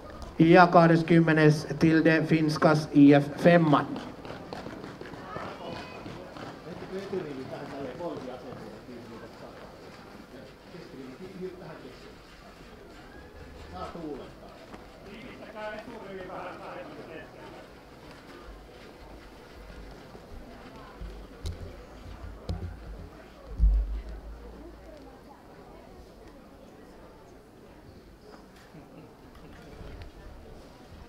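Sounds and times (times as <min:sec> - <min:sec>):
faint background voices: 0:03.9 - 0:31.0
low rumble: 0:23.6 - 0:24.8.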